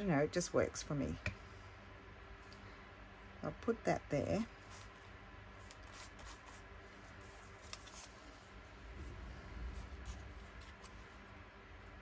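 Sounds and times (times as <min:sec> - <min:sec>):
paper rustling and rubbing: 0:04.6 - 0:11.4.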